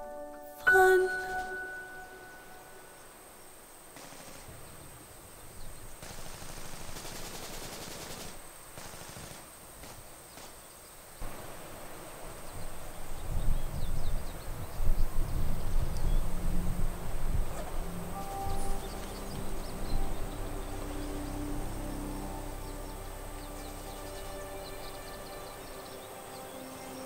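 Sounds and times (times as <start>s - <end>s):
steady hiss: 0.8s - 27.0s
distant rapid gunfire: 4.0s - 4.7s, 6.0s - 10.7s
low rumble: 14.7s - 26.3s.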